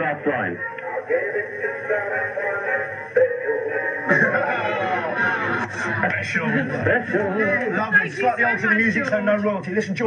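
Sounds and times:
toy singing over telephone line: 0:00.6 - 0:04.0.

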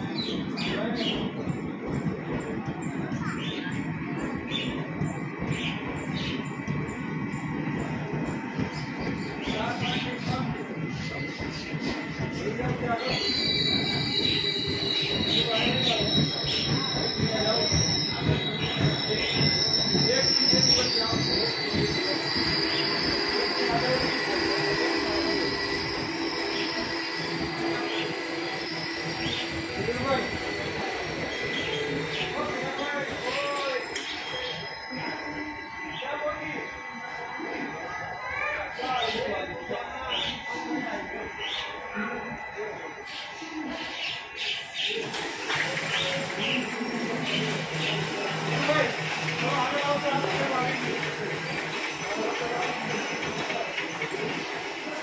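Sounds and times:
short knocks of train coaches: 0:00.0 - 0:34.7
train wheels rumbling on rails: 0:00.0 - 0:55.0.

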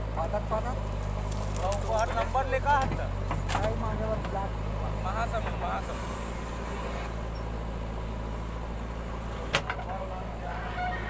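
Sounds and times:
diesel engine droning: 0:00.0 - 0:11.0.

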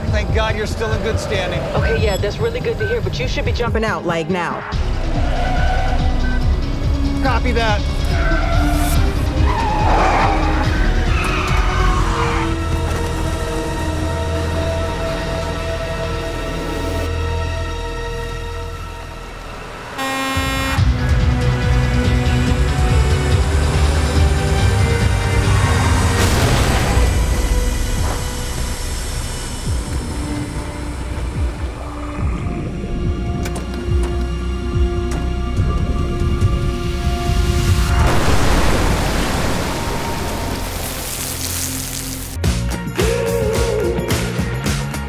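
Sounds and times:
tense score music: 0:00.0 - 0:45.0
fire engine air horn: 0:19.9 - 0:21.0
underwater explosion: 0:25.7 - 0:29.3, 0:37.3 - 0:42.4.

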